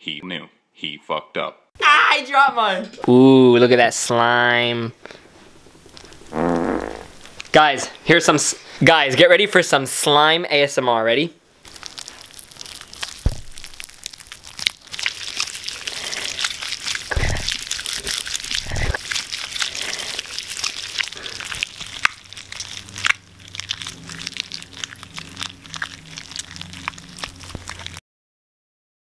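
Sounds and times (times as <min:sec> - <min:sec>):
slime popping and crackling: 0:11.6 - 0:28.0
slime squelches: 0:11.6 - 0:28.0.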